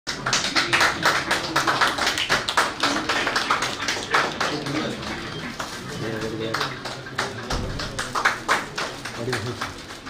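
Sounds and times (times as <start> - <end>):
people applauding: 0.1 - 10.0.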